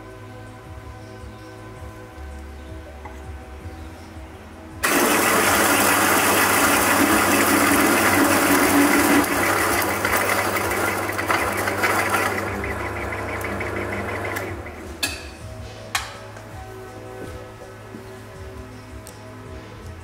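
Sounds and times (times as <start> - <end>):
coffee grinder motor grinding: 4.8 - 14.8.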